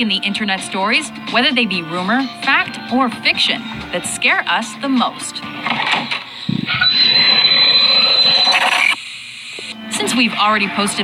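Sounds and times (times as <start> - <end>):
thin high whine: 6.3 - 9.8.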